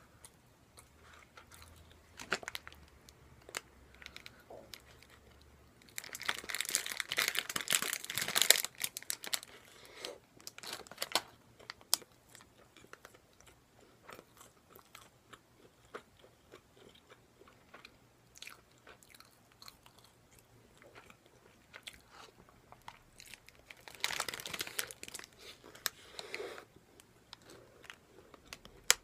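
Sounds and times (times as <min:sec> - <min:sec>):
chewing crunchy fried food: 0:00.2 - 0:29.0.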